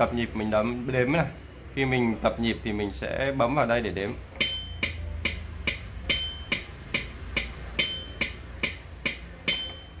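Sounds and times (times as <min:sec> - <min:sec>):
metronome clicking: 0:04.4 - 0:10.0.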